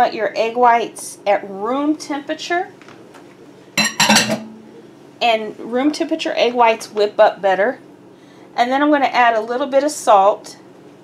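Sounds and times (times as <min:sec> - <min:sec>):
steel bowl clinking: 0:03.8 - 0:04.8.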